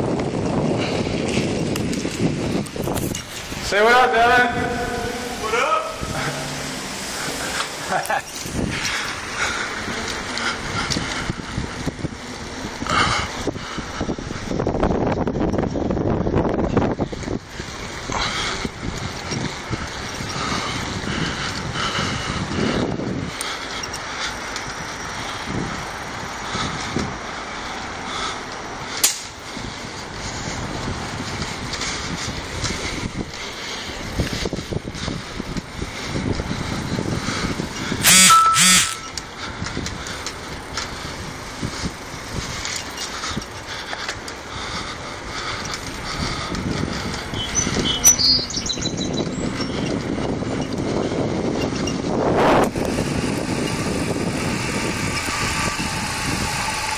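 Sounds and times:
bike tyres rolling on pavement: 0:00.0 - 0:56.9
wind on microphone: 0:00.0 - 0:56.9
sharp click: 0:29.0 - 0:29.3
high-pitched bursts: 0:38.0 - 0:39.2.

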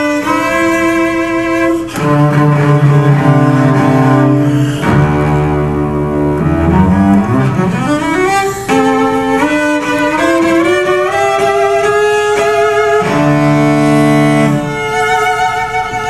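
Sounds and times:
bowed cello jazz melody: 0:00.0 - 0:16.0.

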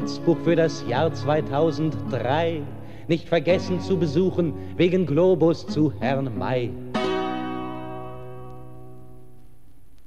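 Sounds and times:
acoustic guitar chord ringing: 0:00.0 - 0:09.4
faint steady hiss: 0:00.0 - 0:10.0.

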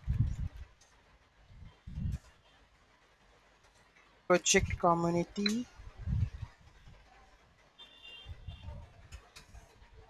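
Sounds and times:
muffled low thumps: 0:00.0 - 0:00.6.

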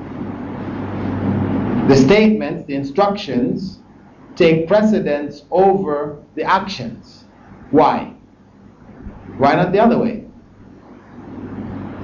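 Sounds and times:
low rumbling noise: 0:00.0 - 0:12.0
man speaking: 0:01.9 - 0:03.8, 0:04.4 - 0:08.2, 0:09.4 - 0:10.4.

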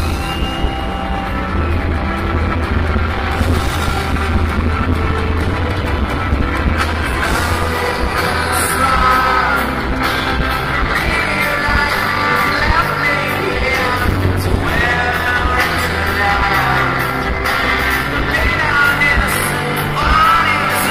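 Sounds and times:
live rock band: 0:00.0 - 0:20.9
person singing: 0:06.7 - 0:20.9.

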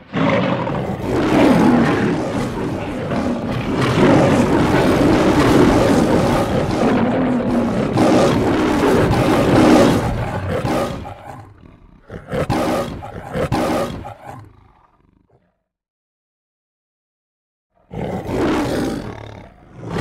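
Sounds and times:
lions roaring: 0:00.0 - 0:15.6, 0:17.8 - 0:20.0.

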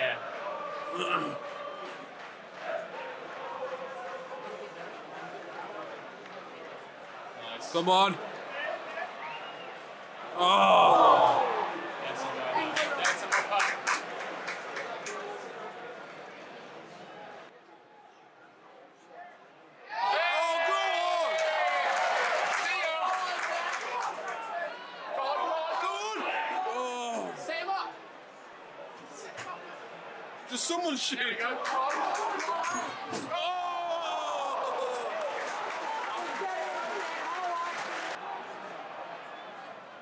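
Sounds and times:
men's voices: 0:00.0 - 0:02.0, 0:10.3 - 0:14.1
stadium crowd noise: 0:00.0 - 0:40.0.

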